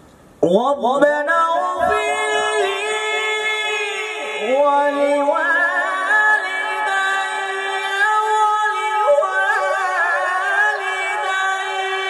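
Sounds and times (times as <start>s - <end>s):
man reciting melodically through microphone: 0.4s - 12.0s.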